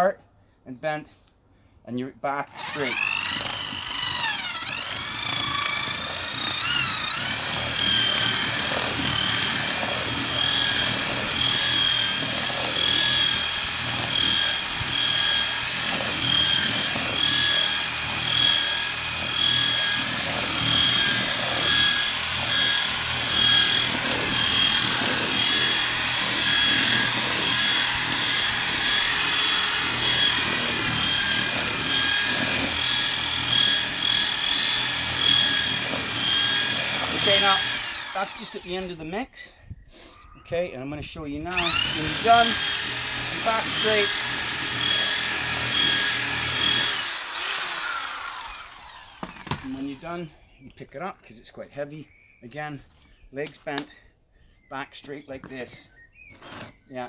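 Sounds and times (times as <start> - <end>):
electric drill motor whine: 2.5 - 39.0, 41.5 - 50.0
paddle scraping thick mix: 2.6 - 39.1, 41.5 - 48.8.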